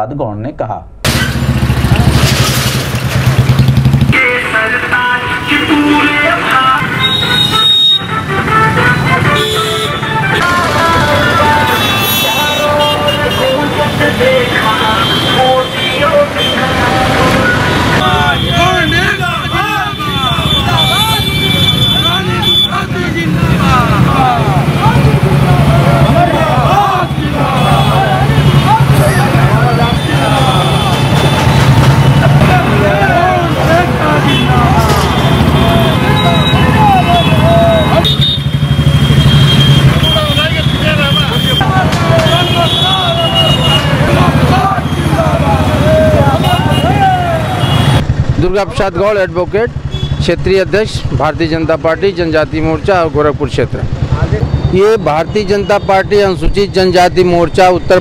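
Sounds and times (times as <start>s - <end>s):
motorcycle engines running: 1.1s - 5.6s, 8.2s - 58.0s
vehicle horns honking: 5.0s - 48.1s, 49.8s - 50.3s
many voices shouting: 22.0s - 31.5s, 32.2s - 38.2s, 41.6s - 47.9s.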